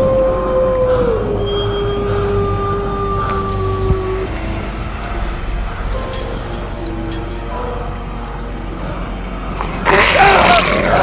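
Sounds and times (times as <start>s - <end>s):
deep rumbling noise: 0.0s - 11.0s.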